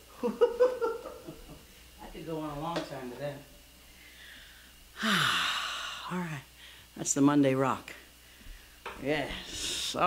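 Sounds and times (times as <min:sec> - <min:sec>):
woman sighing: 0:04.3 - 0:06.2.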